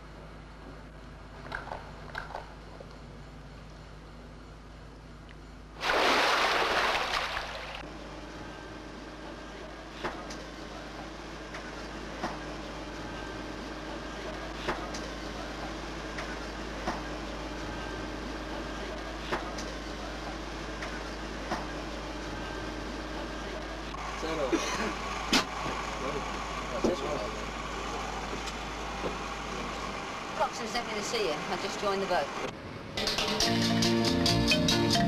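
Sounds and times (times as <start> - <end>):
steady mechanical hum: 0.0 - 34.3
rushing splash of water: 5.8 - 7.8.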